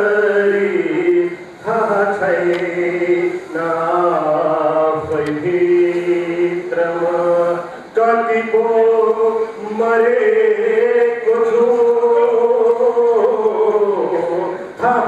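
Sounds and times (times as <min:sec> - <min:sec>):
man chanting poetry: 0:00.0 - 0:15.0.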